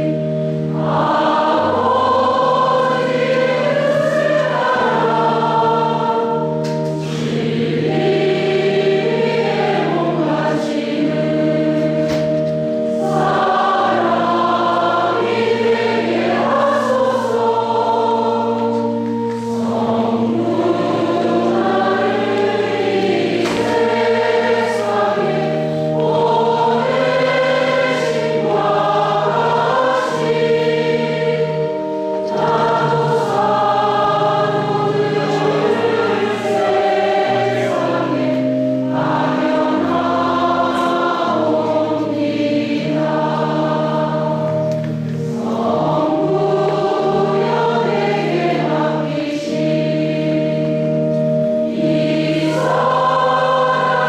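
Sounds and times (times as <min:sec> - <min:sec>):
choir singing a hymn: 0:00.0 - 0:54.0
long held accompanying notes: 0:00.0 - 0:54.0.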